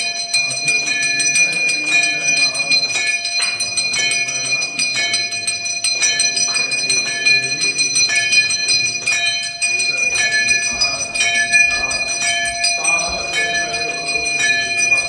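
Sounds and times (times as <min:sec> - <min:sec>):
large brass bell ringing: 0:00.0 - 0:15.0
small hand bell ringing: 0:00.0 - 0:15.0.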